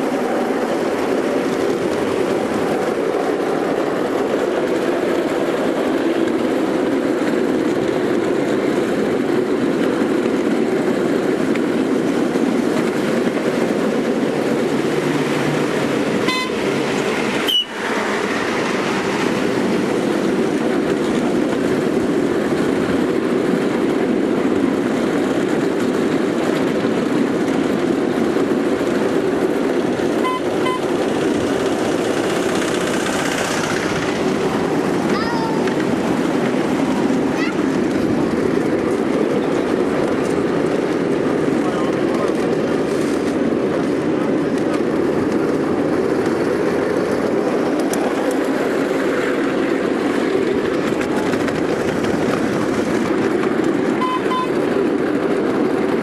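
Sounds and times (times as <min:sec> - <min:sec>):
train wheels rumbling on rails: 0:00.0 - 0:56.0
train horn toot: 0:16.2 - 0:16.7, 0:30.2 - 0:30.9, 0:54.0 - 0:54.6.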